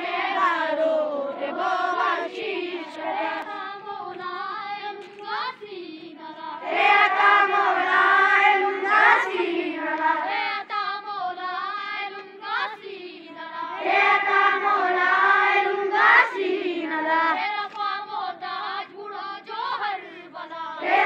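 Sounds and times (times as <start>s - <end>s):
children singing in unison: 0.0s - 21.0s.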